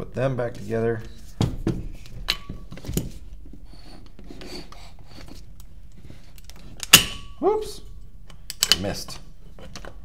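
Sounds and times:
parts rubbing and sliding: 0.6s - 6.8s.

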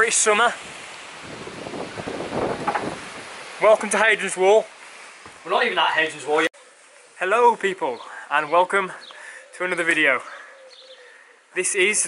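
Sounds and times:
wind buffeting microphone: 0.6s - 3.6s.

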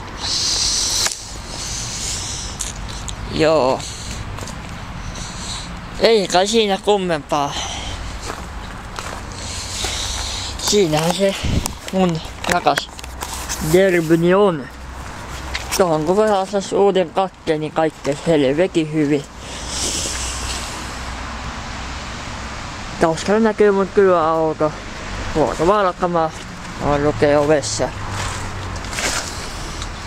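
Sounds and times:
road traffic noise: 0.0s - 30.0s
hiss: 0.1s - 3.0s, 5.1s - 5.7s, 19.4s - 21.1s
footsteps on gravel: 1.0s - 16.7s, 27.4s - 30.0s.

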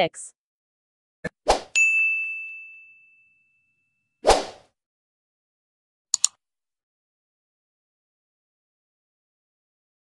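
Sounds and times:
bell-like ding: 1.8s - 4.0s.

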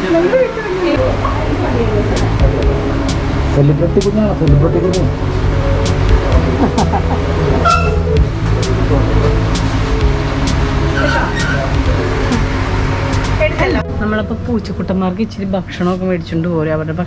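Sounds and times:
indistinct voices: 0.0s - 15.7s
road traffic rumble: 0.0s - 17.0s.

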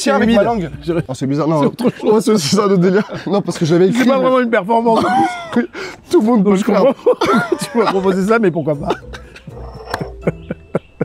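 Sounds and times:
men's stifled laughter: 0.8s - 4.1s, 4.9s - 5.8s, 6.7s - 8.2s, 8.8s - 11.0s.

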